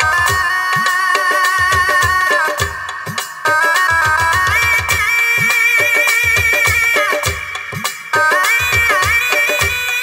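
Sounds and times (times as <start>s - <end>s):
electronic keyboard lead melody: 0.0s - 10.0s
hand drum beats: 0.0s - 10.0s.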